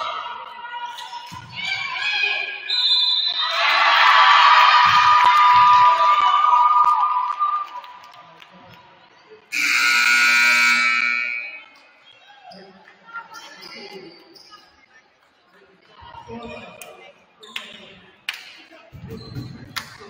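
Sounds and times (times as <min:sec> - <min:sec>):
referee's whistle: 0:02.7 - 0:03.6, 0:09.5 - 0:11.8
scoreboard horn: 0:09.5 - 0:11.7.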